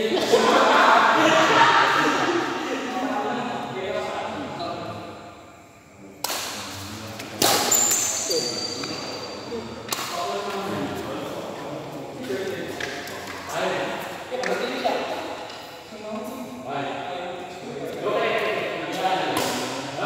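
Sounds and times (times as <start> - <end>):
voices echoing in a hall: 0.0 - 20.0.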